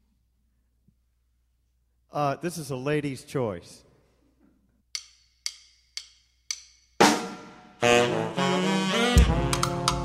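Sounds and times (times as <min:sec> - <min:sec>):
drumstick count-in clicks: 0:04.9 - 0:07.0, 0:09.5 - 0:10.0
drums saxophone and trombone playing: 0:07.0 - 0:10.0.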